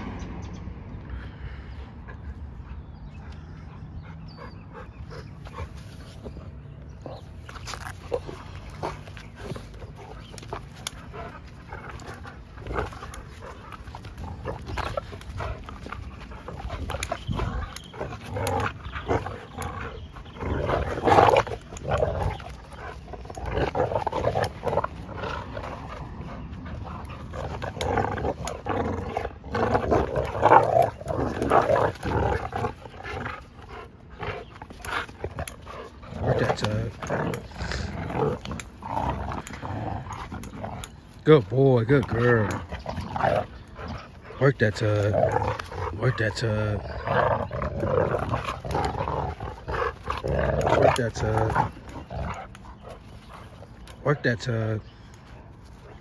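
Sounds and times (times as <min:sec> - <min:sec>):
dogs growling: 0:01.1 - 0:56.0.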